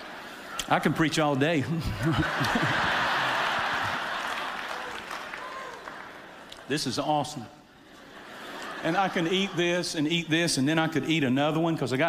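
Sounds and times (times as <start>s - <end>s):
congregation applauding: 2.2s - 6.5s.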